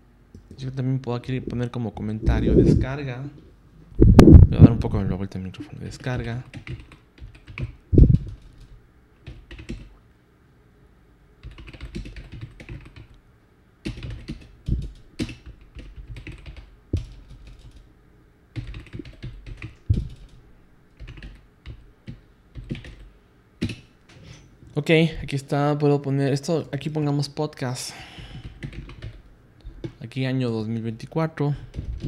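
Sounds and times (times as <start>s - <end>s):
typing on computer keyboard: 6.2s - 9.9s, 11.4s - 13.1s, 13.8s - 17.9s, 18.6s - 20.4s, 21.0s - 23.9s, 28.3s - 29.2s.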